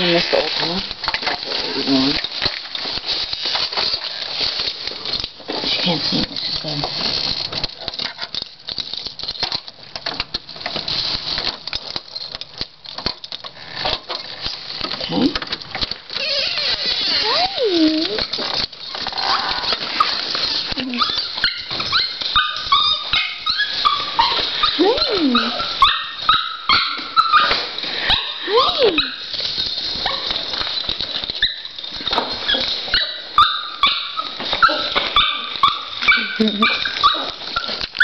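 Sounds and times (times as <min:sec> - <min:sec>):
dog whining: 0:16.1 - 0:18.4, 0:19.0 - 0:29.3, 0:32.4 - 0:38.0
dog yipping: 0:20.8 - 0:29.3, 0:30.0 - 0:30.4, 0:31.4 - 0:31.8, 0:32.4 - 0:37.9.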